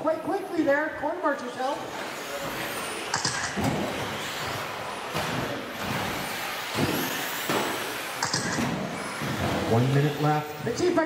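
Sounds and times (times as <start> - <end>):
toy cars knocking on track: 2.6 - 9.7.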